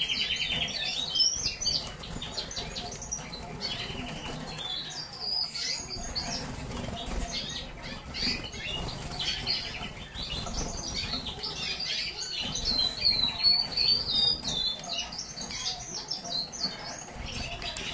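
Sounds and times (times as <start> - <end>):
canaries chirping and trilling: 0.0 - 17.9.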